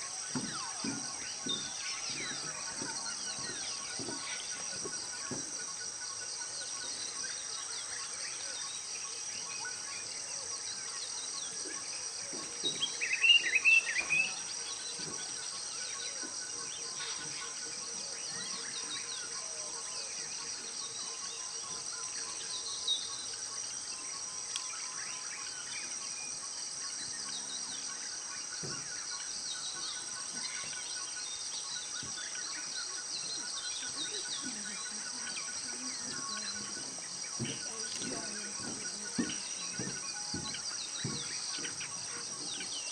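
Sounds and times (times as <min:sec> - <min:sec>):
high-pitched insect chorus: 0:00.0 - 0:42.9
loud whistled bird calls: 0:12.7 - 0:15.2.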